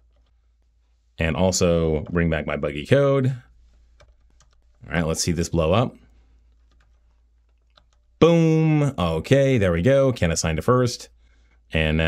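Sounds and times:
faint keyboard keystrokes: 0:03.9 - 0:04.8, 0:06.4 - 0:08.2.

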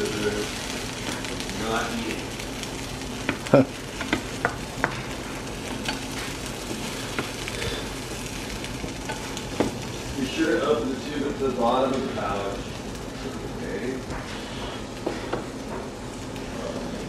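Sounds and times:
onion sizzling in a pan: 0:00.0 - 0:17.0.

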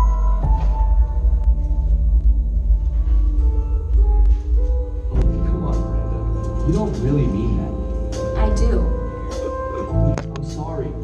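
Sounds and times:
percussion ensemble music: 0:00.0 - 0:11.0.

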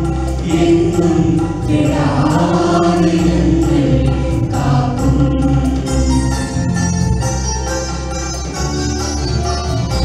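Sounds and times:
instrumental accompaniment with bass: 0:00.0 - 0:10.0
choir singing in unison: 0:00.4 - 0:06.1.

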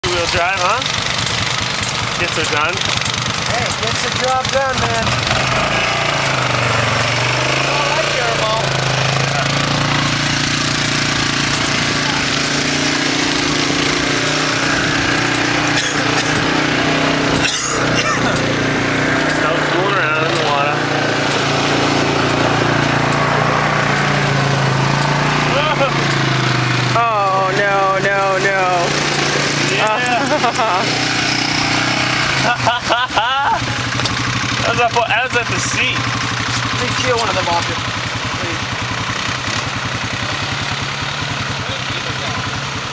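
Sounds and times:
atv engine revving: 0:00.0 - 0:42.9
loud steady noise: 0:00.0 - 0:42.9.

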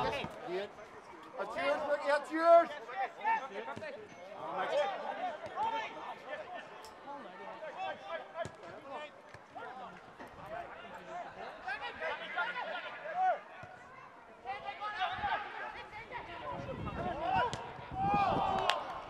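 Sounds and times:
men shouting and chattering: 0:09.6 - 0:13.5.

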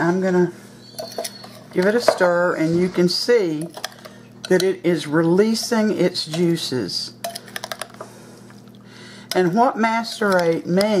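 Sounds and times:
spoon stirring fruit in bowl: 0:03.5 - 0:04.9, 0:09.3 - 0:11.0.

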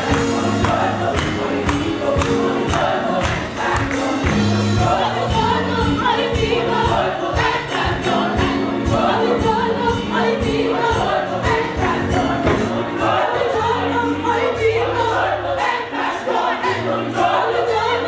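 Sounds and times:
steady drum beat: 0:00.0 - 0:13.6
bass line: 0:00.0 - 0:15.7
choir singing: 0:00.0 - 0:18.0.

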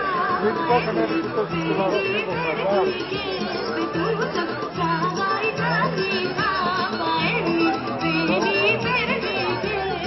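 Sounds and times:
crowd chatter: 0:00.0 - 0:10.0
folk music melody: 0:00.0 - 0:10.0.

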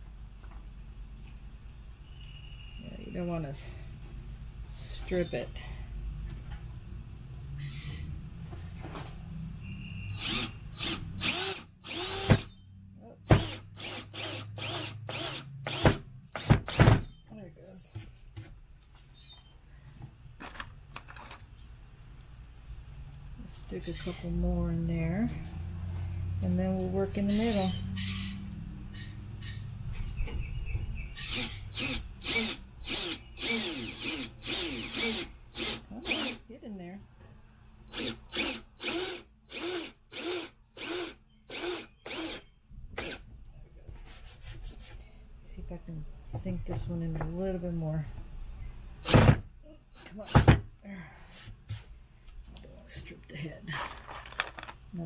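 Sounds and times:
cordless drill driving screws into wood: 0:10.2 - 0:12.6, 0:13.3 - 0:17.1, 0:31.2 - 0:36.4, 0:37.9 - 0:42.4, 0:43.0 - 0:43.2, 0:49.0 - 0:49.4.

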